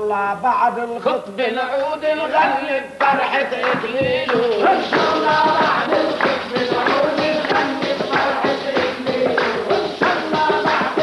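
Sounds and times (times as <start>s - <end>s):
male chorus singing: 1.8s - 11.0s
hand-beaten frame drums: 3.0s - 11.0s.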